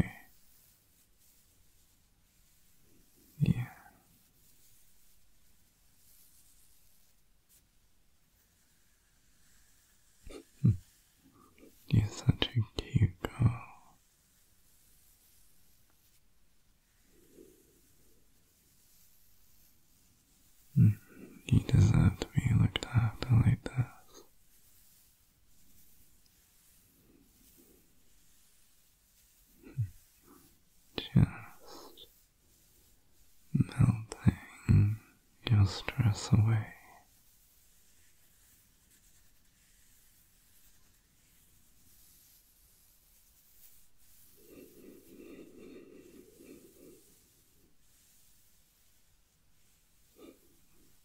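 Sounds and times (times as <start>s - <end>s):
man talking softly: 0.0s - 0.4s, 3.3s - 4.0s, 11.7s - 13.9s, 20.6s - 24.3s, 29.6s - 32.2s, 33.5s - 37.1s
man whispering close to microphone: 0.0s - 0.6s, 3.3s - 4.1s, 10.3s - 14.1s, 20.5s - 24.3s, 29.6s - 32.7s, 33.5s - 37.2s.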